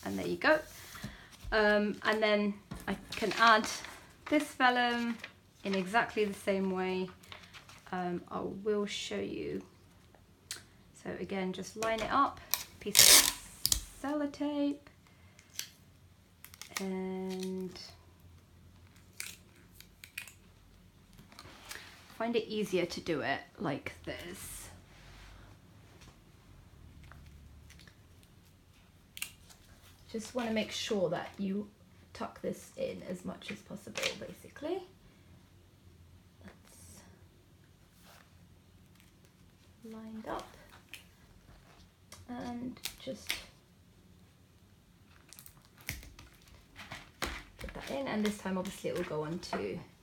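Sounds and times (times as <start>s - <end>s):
soft paper rustles and taps: 0.7s - 7.9s, 45.2s - 49.8s.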